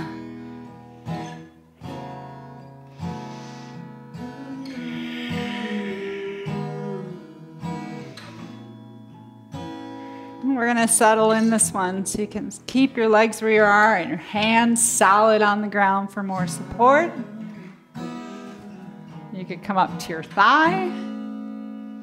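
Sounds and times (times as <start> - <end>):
acoustic guitar strumming: 0.0 - 22.0.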